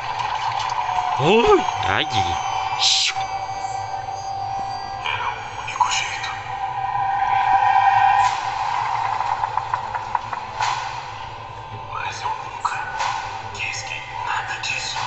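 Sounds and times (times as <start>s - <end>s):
sustained droning tone: 0.7s - 12.0s.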